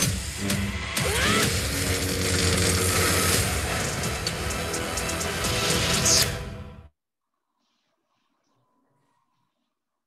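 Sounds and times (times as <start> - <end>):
film trailer music: 0.0 - 7.0.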